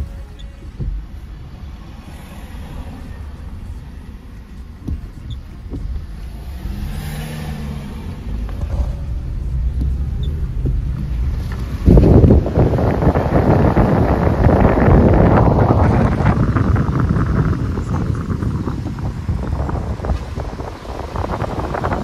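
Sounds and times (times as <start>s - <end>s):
car engine and road noise: 0.0s - 22.0s
wind buffeting microphone: 4.8s - 22.0s.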